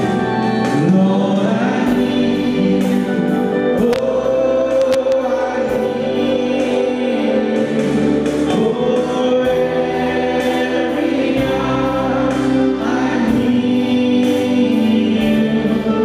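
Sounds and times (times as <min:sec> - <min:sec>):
group singing a worship song: 0:00.0 - 0:16.0.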